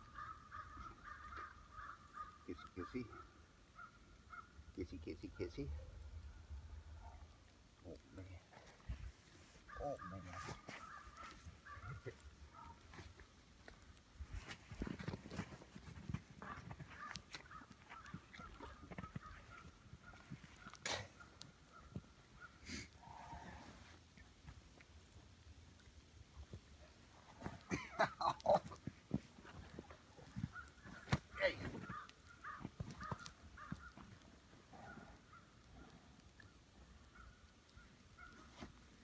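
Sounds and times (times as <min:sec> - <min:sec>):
bear sounds: 0:00.1 - 0:03.4, 0:09.6 - 0:13.1, 0:16.4 - 0:24.0, 0:26.8 - 0:37.2.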